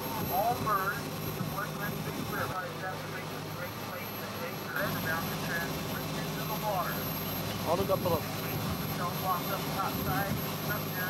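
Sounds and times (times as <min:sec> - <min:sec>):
boat engine drone: 0:00.0 - 0:11.0.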